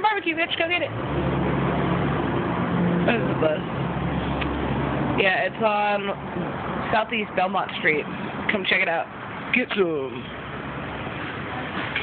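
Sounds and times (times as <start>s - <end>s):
bus engine droning: 0.0s - 9.4s.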